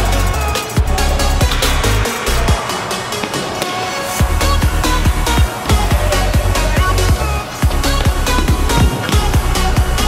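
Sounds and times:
heavy bass line: 0.0s - 3.1s, 4.2s - 10.0s
electronic music with beat: 0.0s - 10.0s.

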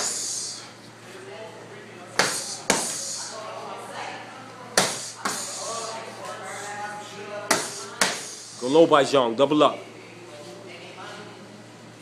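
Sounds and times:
boxing gloves hitting focus mitts: 2.2s - 3.0s, 4.8s - 5.5s, 7.5s - 8.3s.

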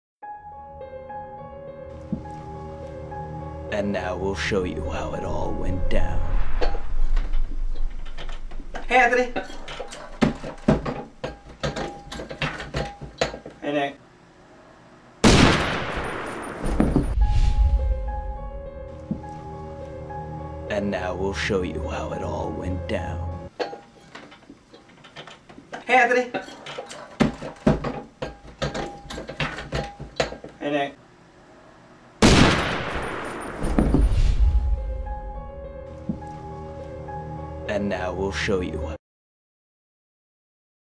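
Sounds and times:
loud bang: 15.2s - 18.4s, 32.2s - 34.9s.

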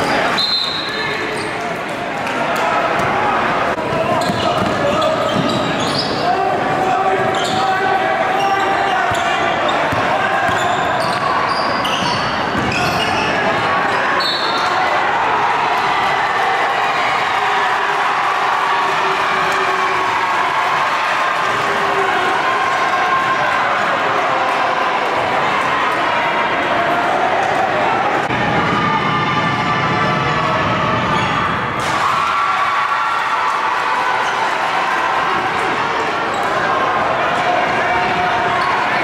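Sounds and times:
crowd chatter: 0.0s - 39.0s
shoes squeaking: 4.1s - 6.3s.

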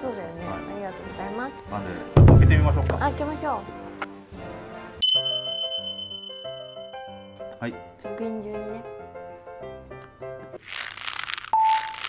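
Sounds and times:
light background music: 0.0s - 10.7s
bell ding: 5.0s - 7.4s.

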